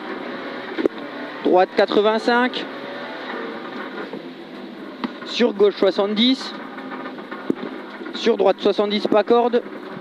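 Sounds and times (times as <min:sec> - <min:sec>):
car engine running: 0:00.0 - 0:10.0
tyre noise on wet road: 0:00.0 - 0:10.0.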